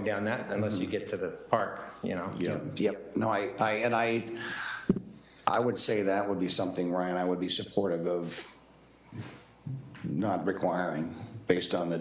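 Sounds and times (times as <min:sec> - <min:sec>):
man speaking: 0:00.0 - 0:04.6, 0:05.4 - 0:08.6, 0:10.0 - 0:12.0.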